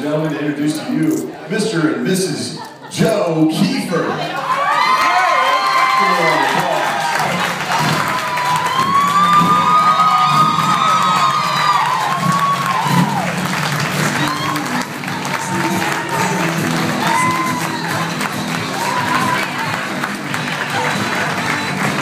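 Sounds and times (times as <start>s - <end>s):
crowd cheering and applauding: 4.2s - 22.0s
music playing: 5.7s - 22.0s.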